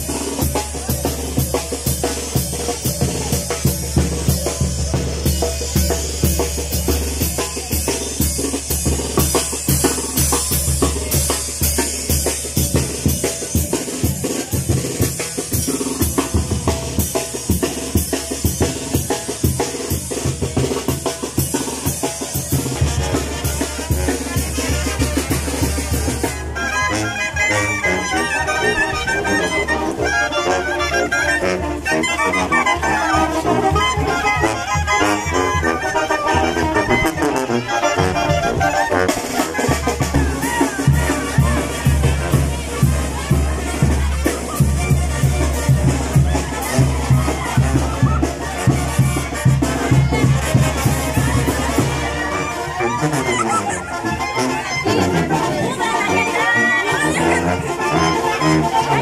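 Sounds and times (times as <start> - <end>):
drums playing: 0.0 - 26.6, 38.8 - 52.2
brass band playing: 0.0 - 59.0.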